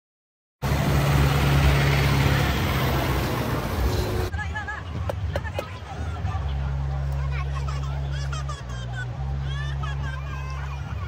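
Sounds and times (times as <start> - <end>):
engine with low hum: 0.6 - 11.0.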